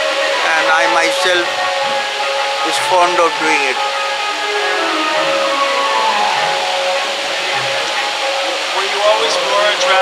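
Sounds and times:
faint distant voices: 0.4 - 10.0.

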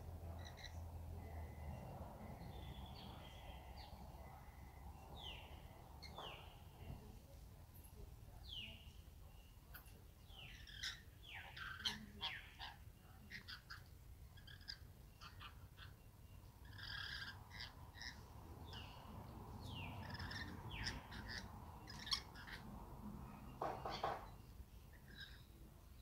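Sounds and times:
lorikeets chattering: 0.0 - 7.2, 7.9 - 26.0
faint low rumble: 0.0 - 11.0.

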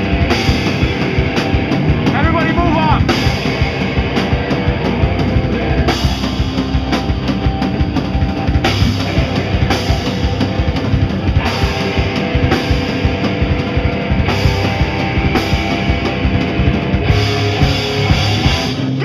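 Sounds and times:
drum kit pounding: 0.0 - 19.0
electric guitar: 0.0 - 19.0.

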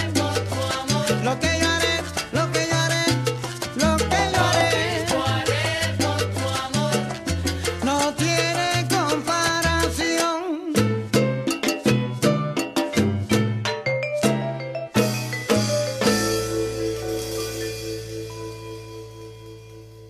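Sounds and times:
salsa band playing: 0.0 - 20.0.

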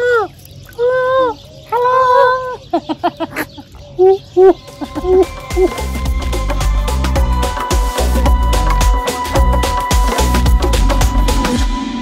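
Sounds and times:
bird calling: 0.0 - 6.1
background music with a beat: 4.6 - 12.0.

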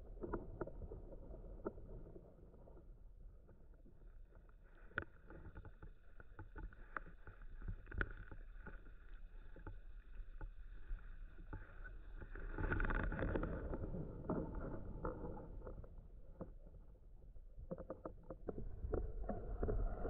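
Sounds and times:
small underwater clicks and knocks: 0.0 - 20.0
low underwater rumble: 9.0 - 20.0.

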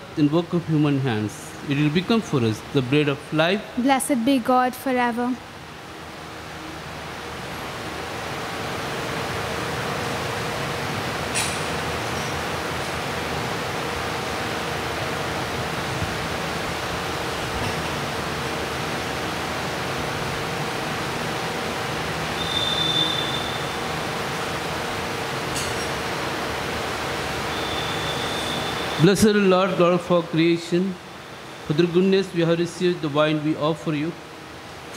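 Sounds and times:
room noise hiss: 0.0 - 34.9
brief high ringing tone: 27.5 - 29.0.

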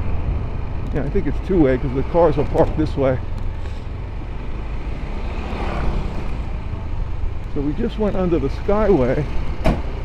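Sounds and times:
motorcycle engine rumble: 0.0 - 10.0
road noise: 0.0 - 10.0.

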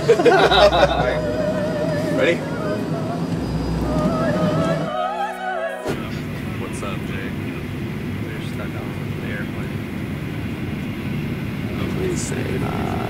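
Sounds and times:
airliner cabin rumble: 0.0 - 5.2, 5.8 - 13.0.

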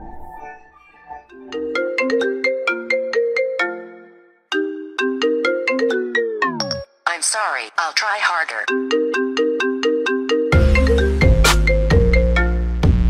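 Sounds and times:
marimba-like ringtone melody: 1.0 - 6.9, 8.6 - 12.6.

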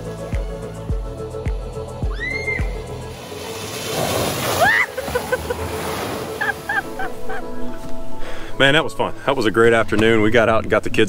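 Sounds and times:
background music with beat: 0.0 - 3.9
high-pitched cries: 2.0 - 2.9
muddy water splashing: 2.6 - 7.8.

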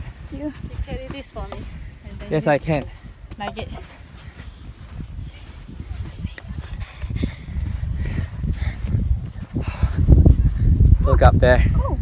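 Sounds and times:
footsteps in soft sand: 0.0 - 11.6
wind buffeting microphone: 0.0 - 12.0.

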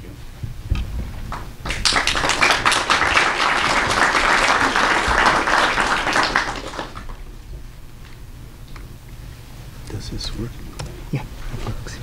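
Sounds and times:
audience applauding: 1.3 - 7.2.

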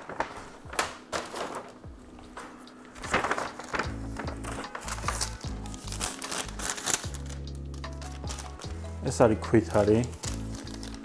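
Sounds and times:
background music with low notes: 0.0 - 11.0
paper receipt rustling: 0.0 - 11.0.

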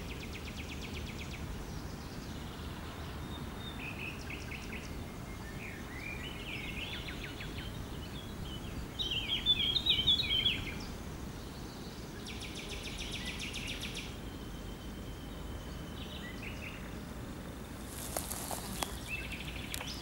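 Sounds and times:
songbirds singing: 0.0 - 20.0.

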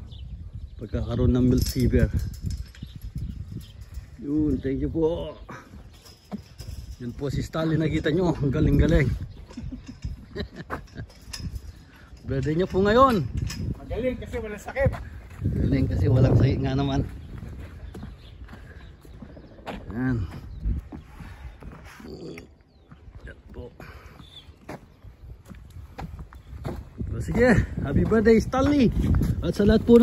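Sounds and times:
outdoor background noise: 0.0 - 30.0
footsteps on gravel: 24.5 - 30.0.

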